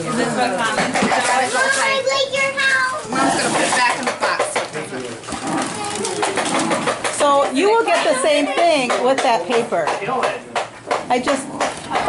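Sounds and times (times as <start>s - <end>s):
wrapping paper tearing: 1.4s - 7.1s.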